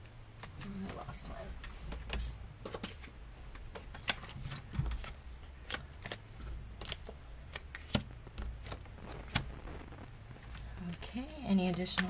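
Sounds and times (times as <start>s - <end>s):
cards being flipped and dealt: 1.9s - 9.5s.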